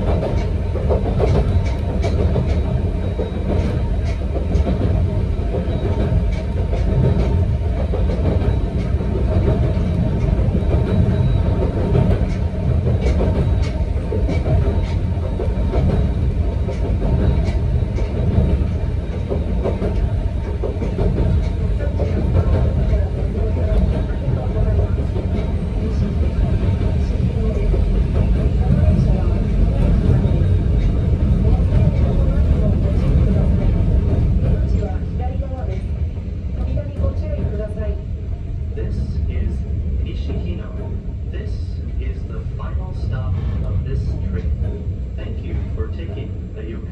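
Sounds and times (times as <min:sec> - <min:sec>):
train wheels rumbling on rails: 0:00.0 - 0:46.9.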